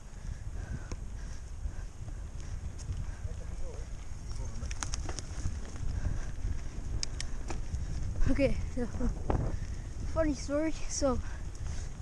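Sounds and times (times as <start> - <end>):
wind on microphone: 0.0 - 12.0
bike clicks and rattles: 0.1 - 10.1.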